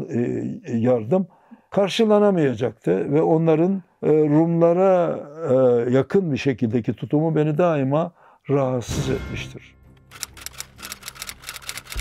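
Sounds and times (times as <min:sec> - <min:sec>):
sharp clicks: 0:10.0 - 0:12.0.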